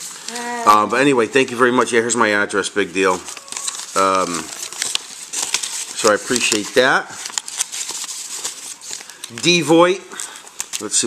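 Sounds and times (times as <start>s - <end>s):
packaging rustling and crinkling: 0.0s - 11.0s.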